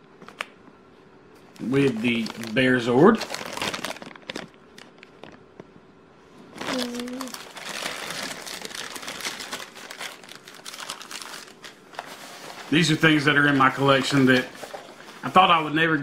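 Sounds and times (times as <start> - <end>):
plastic bag crinkling: 1.6 - 5.6, 6.5 - 15.6.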